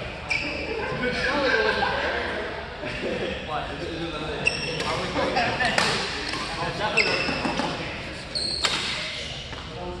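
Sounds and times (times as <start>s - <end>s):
murmur of voices: 0.0s - 10.0s
shoes squeaking on court floor: 0.2s - 0.7s, 4.4s - 9.9s.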